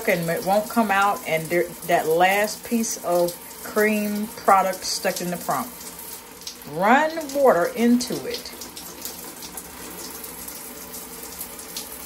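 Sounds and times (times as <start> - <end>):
tap water running: 0.0 - 12.0.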